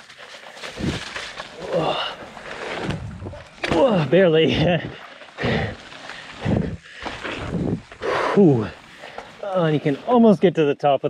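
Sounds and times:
person breathing heavily: 0:04.8 - 0:09.4.

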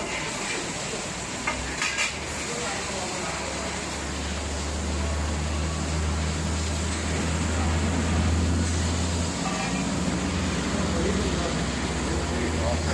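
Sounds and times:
workshop noise hiss: 0:00.0 - 0:12.9.

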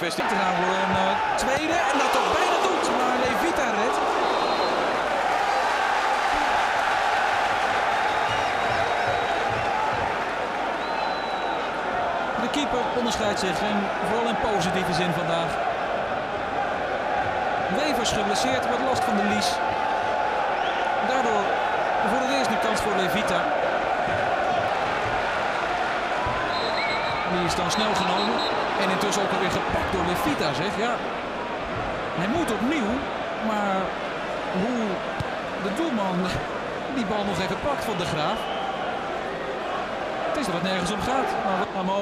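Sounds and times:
stadium crowd voices: 0:00.0 - 0:42.0.

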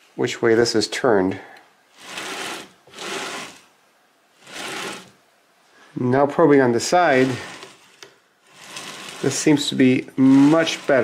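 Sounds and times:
wooden carriage sliding rush: 0:04.4 - 0:05.1, 0:06.8 - 0:07.9, 0:08.5 - 0:11.0.

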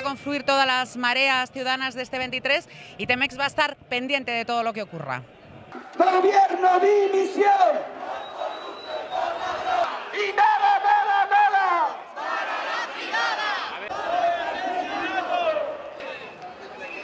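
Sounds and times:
man shouting through megaphone: 0:05.8 - 0:08.0, 0:10.0 - 0:12.0, 0:14.1 - 0:17.0
crowd chanting in unison: 0:07.1 - 0:17.0.

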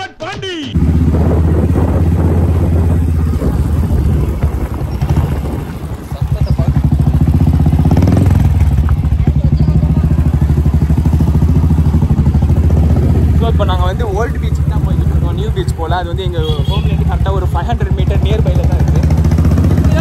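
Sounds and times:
motorcycle engine running: 0:00.8 - 0:20.0.

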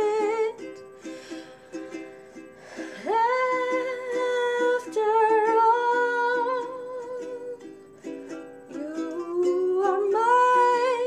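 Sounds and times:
woman singing wordless notes: 0:00.0 - 0:00.9, 0:02.7 - 0:11.0
ukulele strumming: 0:00.0 - 0:11.0.

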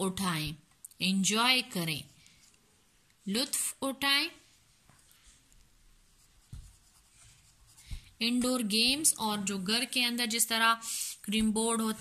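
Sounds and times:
pencil scratching on paper: 0:06.0 - 0:09.1.

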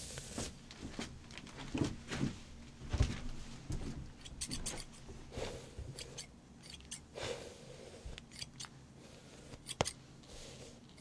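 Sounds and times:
scissors snipping hair: 0:06.0 - 0:07.0, 0:08.2 - 0:08.7, 0:09.6 - 0:10.0.

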